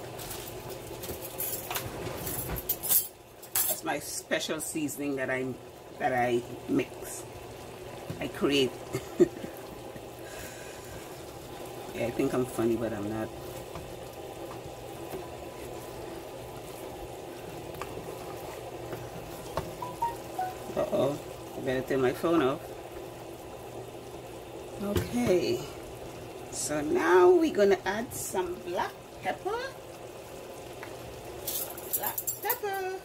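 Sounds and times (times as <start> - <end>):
pot bubbling while simmering: 0.0 - 33.0
person laughing: 8.9 - 9.6.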